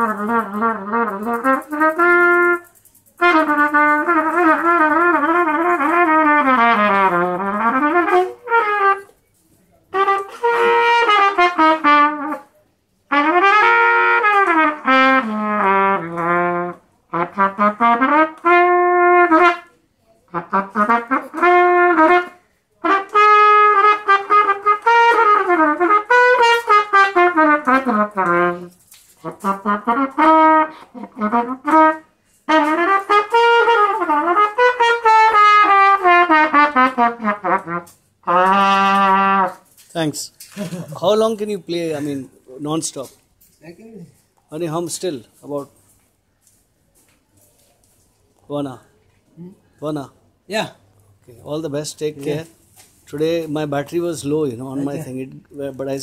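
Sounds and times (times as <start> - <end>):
trumpet playing a melody: 0.0 - 39.9, 51.8 - 55.2.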